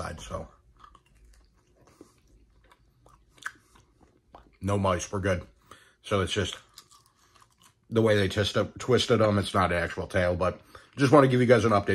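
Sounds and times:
faint chewing: 0.0 - 4.8, 6.5 - 8.0.

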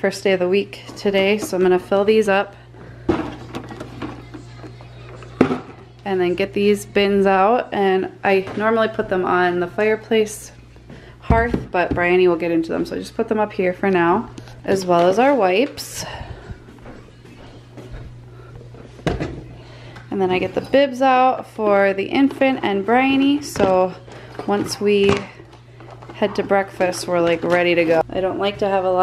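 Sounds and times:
steady low hum: 0.0 - 29.0
plastic bottles being handled: 3.0 - 6.0, 23.0 - 28.0
plastic bin knocked: 11.3 - 12.1.

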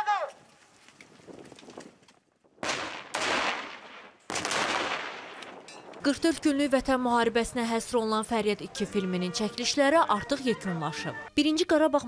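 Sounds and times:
loud explosion blasts: 2.6 - 5.4
gunfire: 2.6 - 5.7.

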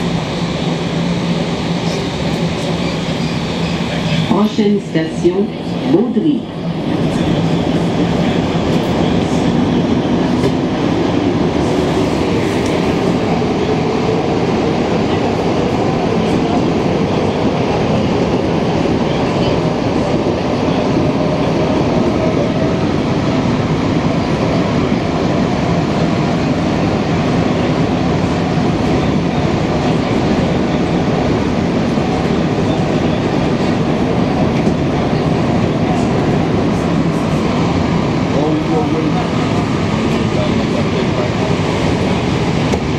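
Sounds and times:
train rumbling in tunnel: 0.0 - 42.9.

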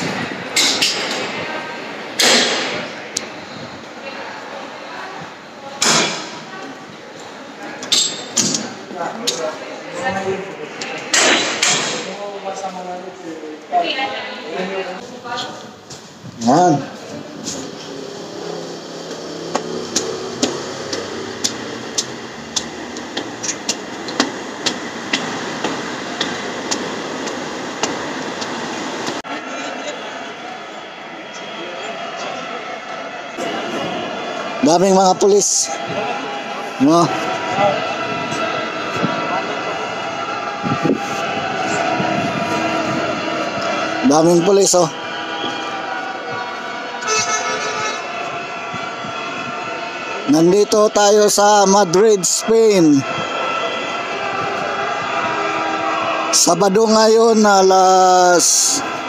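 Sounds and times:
metro station hall ambience: 0.0 - 59.0.

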